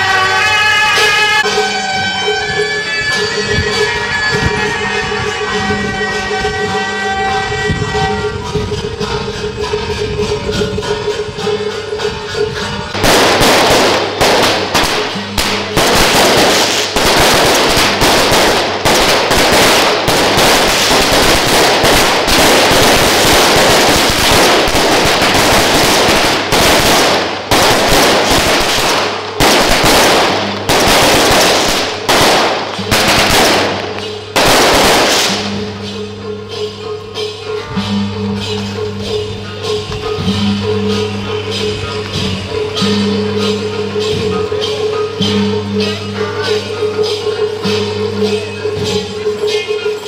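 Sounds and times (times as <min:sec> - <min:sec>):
firecrackers cracking: 0:12.9 - 0:35.9.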